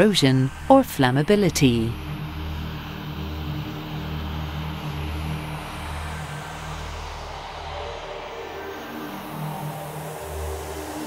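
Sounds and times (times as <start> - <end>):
music of sustained low notes: 0.0 - 11.0.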